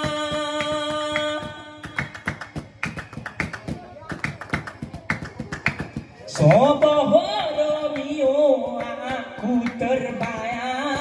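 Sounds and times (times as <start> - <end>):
group clapping rhythm: 0.0 - 11.0.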